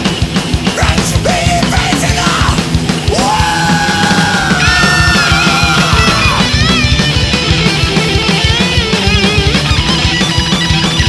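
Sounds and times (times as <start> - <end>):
distorted guitars: 0.0 - 11.0
fast drums: 0.0 - 11.0.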